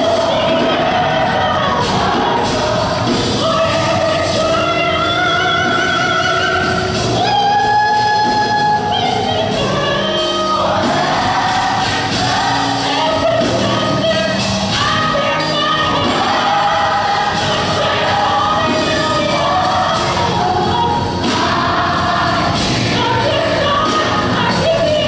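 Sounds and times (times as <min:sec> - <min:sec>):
drums: 0:00.0 - 0:25.0
gospel choir singing: 0:00.0 - 0:25.0
piano: 0:00.0 - 0:25.0.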